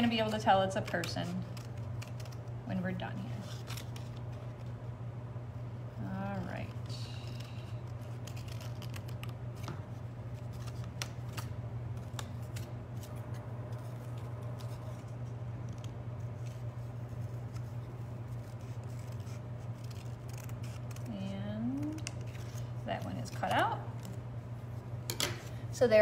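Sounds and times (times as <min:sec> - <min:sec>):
scissors snipping paper: 0:00.0 - 0:04.6, 0:06.4 - 0:09.8, 0:18.4 - 0:24.2
steady low hum: 0:00.0 - 0:26.0.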